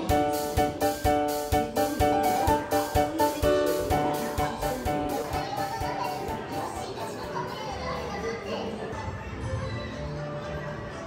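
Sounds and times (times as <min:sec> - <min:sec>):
faint music: 0:00.0 - 0:11.0
children chattering: 0:01.8 - 0:11.0.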